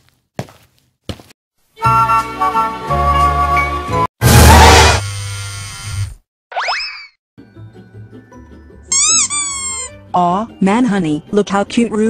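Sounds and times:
quiet music: 7.4 - 12.0.

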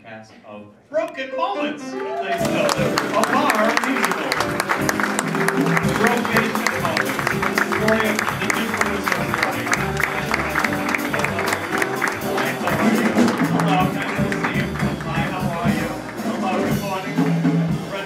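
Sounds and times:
audience applauding: 1.9 - 16.7
live band with bass and drums: 2.4 - 18.0.

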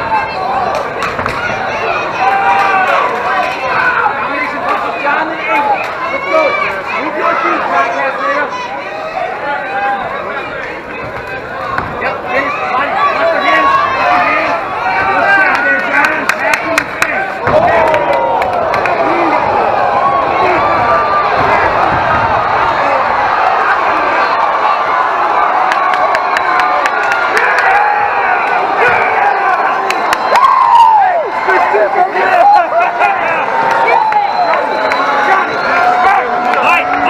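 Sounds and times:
crowd shouting and cheering: 0.0 - 37.0.

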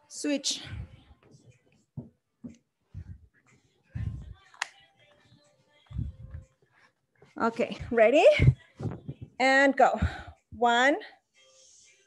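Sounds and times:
thumps and shuffling on mat: 7.2 - 10.4.

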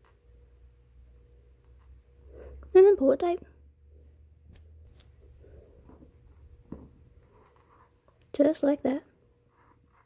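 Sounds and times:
soft rustle of cord: 4.9 - 8.4, 9.3 - 10.0.

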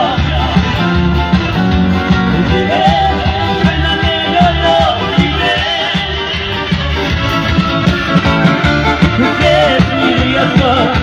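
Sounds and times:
band music on electronic keyboard: 0.0 - 11.0.

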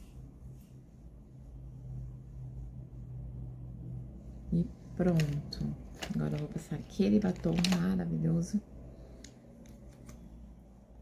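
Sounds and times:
lipstick tube handling: 7.3 - 7.8.

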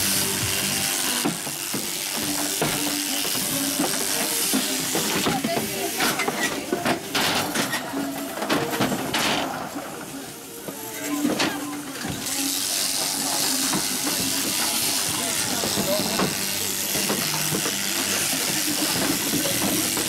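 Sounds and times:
shearing handpiece hissing: 0.0 - 6.7, 11.7 - 20.0.

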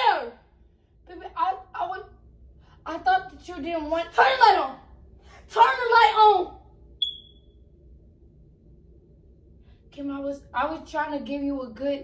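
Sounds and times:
faint low room hum: 0.0 - 12.0
short high beep of touch switch: 7.0 - 7.4.

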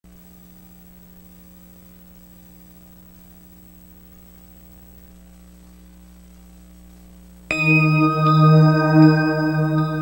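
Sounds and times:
electrical mains hum with buzz: 0.1 - 10.0.

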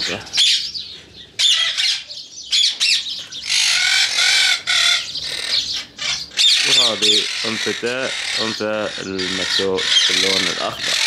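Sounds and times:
parakeets squawking: 0.0 - 11.0.

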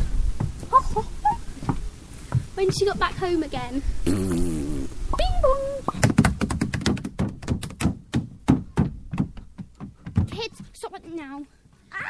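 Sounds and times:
evenly spaced knocks: 5.9 - 11.2.

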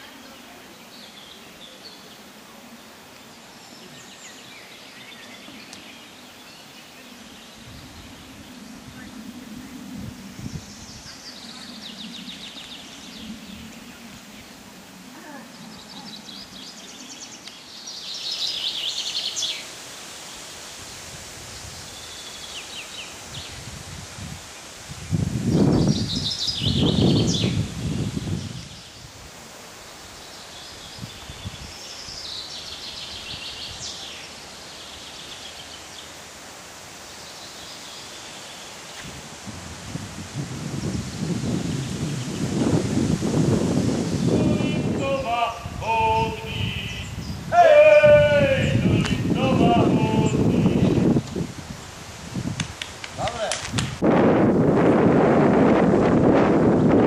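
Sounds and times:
small birds trilling: 0.0 - 20.5, 24.5 - 36.3, 40.8 - 52.0
low rushing noise: 0.0 - 30.2
steady outdoor hiss: 0.0 - 57.0.

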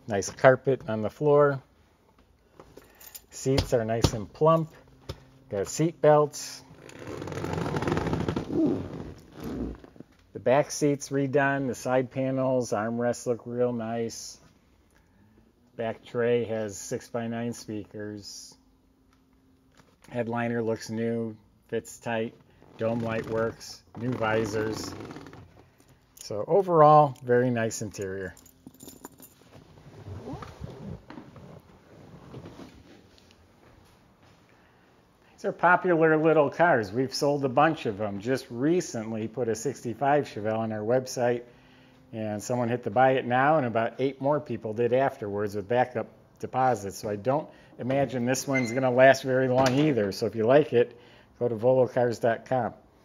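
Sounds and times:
rising squeak: 48.5 - 49.0.

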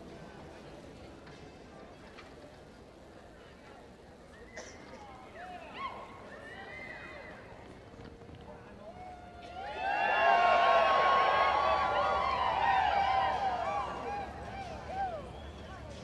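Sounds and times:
spectators cheering and whooping: 8.8 - 16.0.

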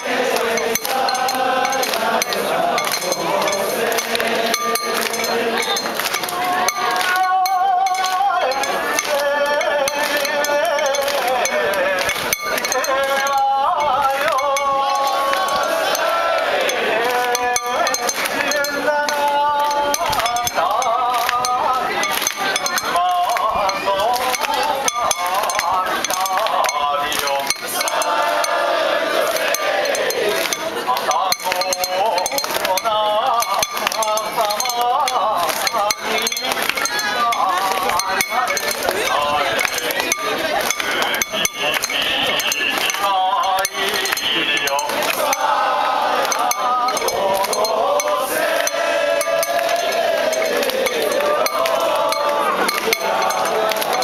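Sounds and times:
metal fittings jingling: 0.0 - 28.6, 29.2 - 45.6, 46.2 - 54.0
crowd chanting: 0.0 - 54.0.

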